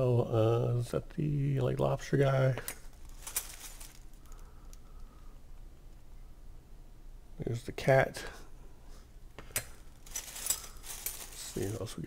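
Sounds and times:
tissue paper crinkling: 2.9 - 4.4, 9.9 - 12.0.

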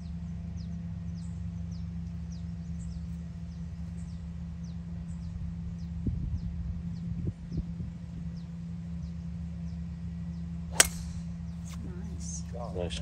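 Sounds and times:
golf driver striking ball: 10.7 - 11.4.

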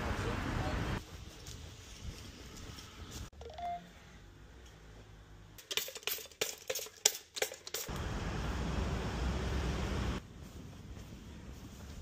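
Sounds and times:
short electronic beep: 3.4 - 3.9.

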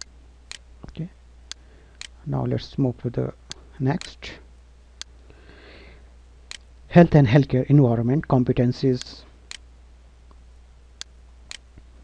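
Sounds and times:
low electrical hum: 0.0 - 12.0
faint breath through nose: 5.2 - 6.1.

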